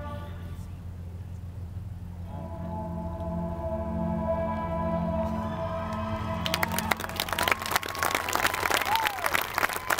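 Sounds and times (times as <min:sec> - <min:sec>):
crowd whistling: 0:05.3 - 0:09.9
audience applause: 0:05.9 - 0:09.9.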